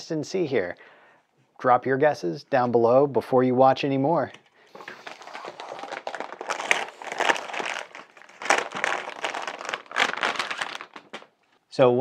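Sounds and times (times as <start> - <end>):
plastic bag crinkling: 4.7 - 11.6.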